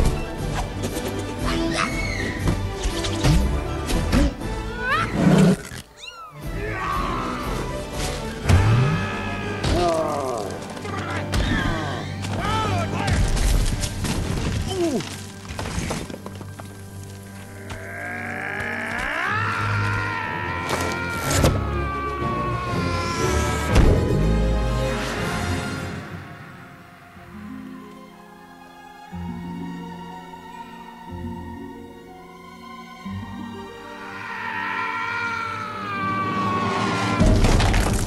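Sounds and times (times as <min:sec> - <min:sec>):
film music: 0:00.0 - 0:38.0
falling whistles: 0:01.8 - 0:02.4
animal roar: 0:17.5 - 0:23.7.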